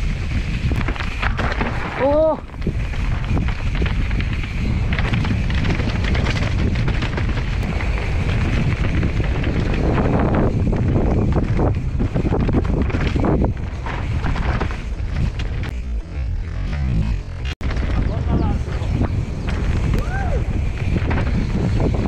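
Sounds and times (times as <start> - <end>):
bike tyres and frame rattling: 0.0 - 22.0
wind buffeting microphone: 0.0 - 22.0
knocks from roots and stones: 0.8 - 15.8.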